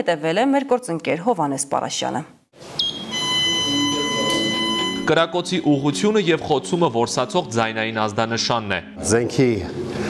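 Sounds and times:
high electronic buzzer tone: 2.8 - 5.2.

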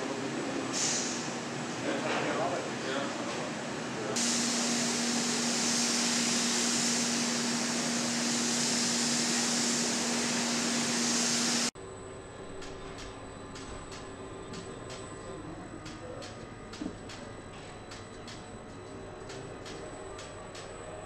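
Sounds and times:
loud hiss of air: 0.7 - 1.4, 4.2 - 11.7.

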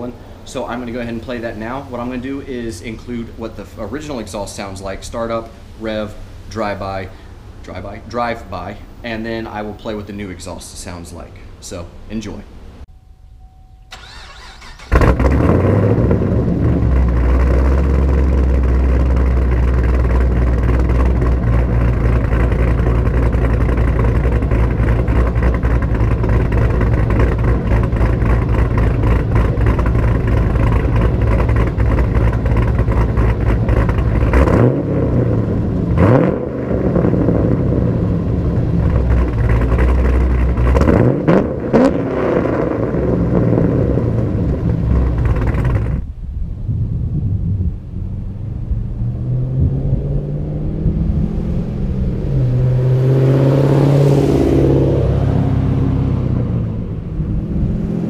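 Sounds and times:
car engine starting and idling: 0.0 - 58.0
car engine revving: 13.9 - 58.0.

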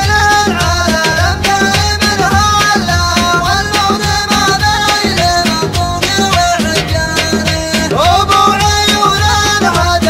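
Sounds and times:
percussion beat: 0.0 - 10.0.

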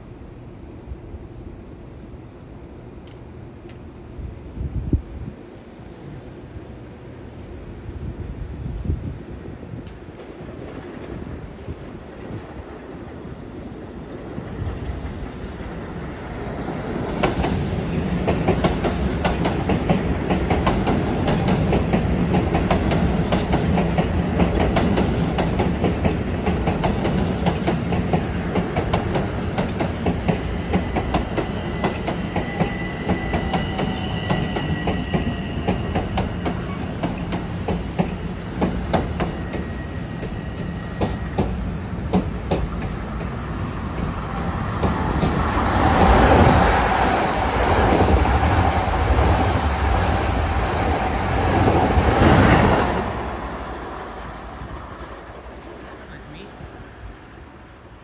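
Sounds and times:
train passing: 0.0 - 58.0.

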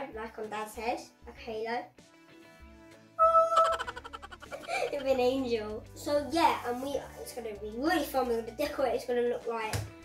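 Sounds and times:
soft background music: 0.0 - 10.0
musical sound effect: 3.2 - 5.4.

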